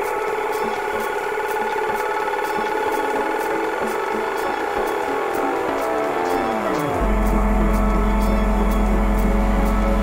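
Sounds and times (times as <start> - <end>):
steady high ticks: 0.0 - 10.0
sustained synth chords: 0.0 - 10.0.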